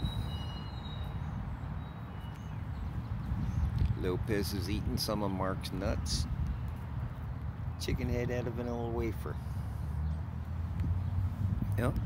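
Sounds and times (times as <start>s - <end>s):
faint high whistles: 0.0s - 1.4s
outdoor background rumble: 0.0s - 12.0s.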